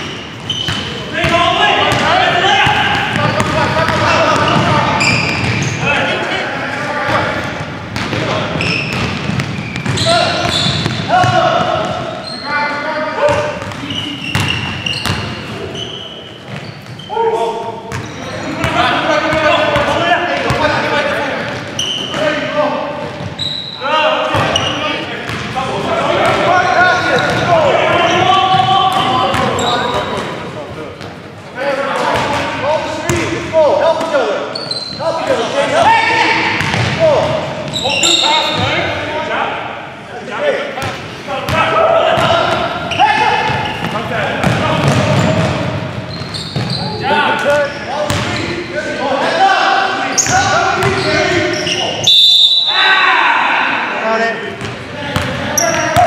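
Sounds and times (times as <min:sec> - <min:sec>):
players calling out: 0:00.0 - 0:56.0
basketball bouncing on hardwood: 0:43.8 - 0:45.6.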